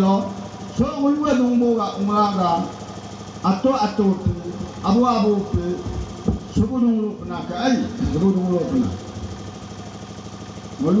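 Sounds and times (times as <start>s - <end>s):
low hum with faint flutter: 0.0s - 11.0s
person speaking: 3.5s - 9.5s.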